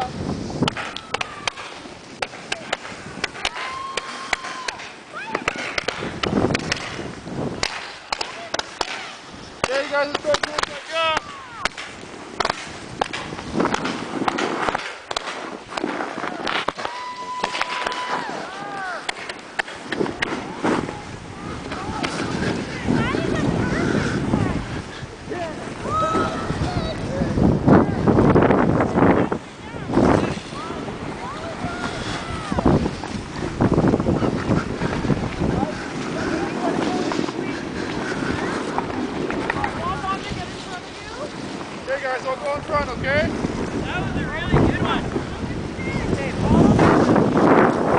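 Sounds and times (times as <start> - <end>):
skis rushing over snow: 0.0 - 47.9
wind buffeting microphone: 0.0 - 47.9
people whooping and calling out: 0.8 - 1.8, 3.4 - 5.8, 11.0 - 11.7, 16.1 - 19.1, 25.7 - 27.4, 29.8 - 32.8.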